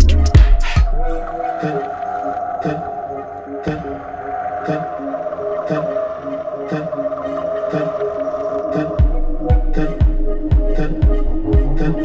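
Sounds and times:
slow soft beat: 0.0 - 1.2, 9.0 - 12.0
sustained synth tones: 0.0 - 12.0.

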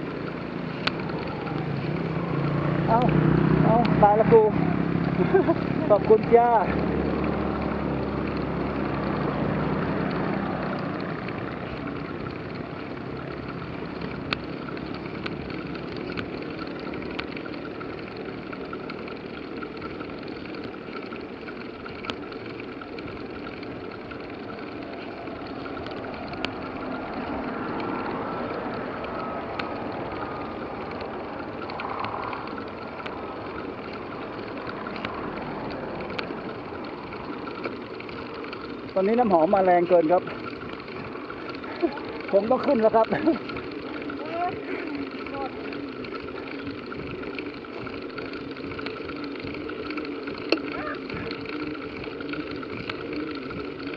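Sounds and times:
bicycle clicks and rattles: 0.0 - 53.9
road rumble: 0.0 - 53.9
wind: 0.0 - 53.9.

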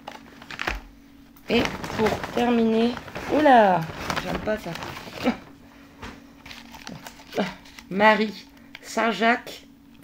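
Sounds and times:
steady low hum: 0.0 - 10.0
person speaking: 1.4 - 5.6, 6.9 - 9.7
cardboard box rustling: 1.5 - 5.5.

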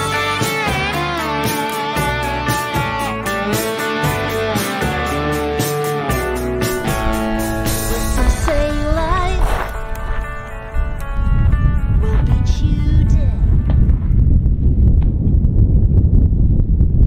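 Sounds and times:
wind buffeting microphone: 6.7 - 17.0
song with singing: 7.6 - 9.8, 12.0 - 13.6.

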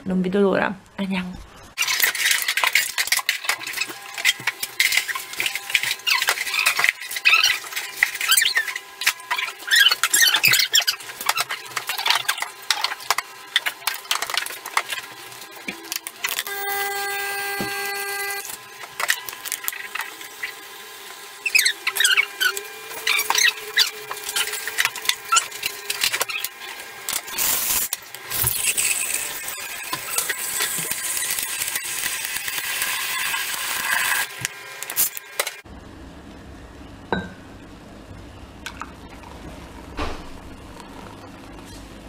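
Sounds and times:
steam wand frothing milk: 1.8 - 35.6
espresso machine hum: 3.5 - 42.0.

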